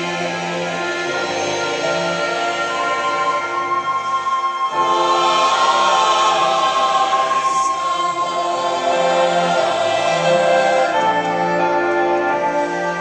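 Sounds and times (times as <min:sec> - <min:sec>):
church choir singing: 0:00.0 - 0:13.0
instrumental ensemble: 0:00.0 - 0:13.0.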